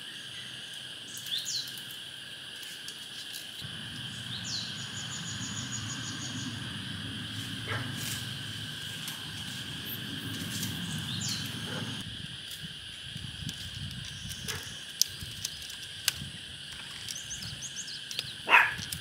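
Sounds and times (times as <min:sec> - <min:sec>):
high-pitched insect drone: 0:00.0 - 0:18.8
bird chirps: 0:03.7 - 0:08.3, 0:09.4 - 0:12.0.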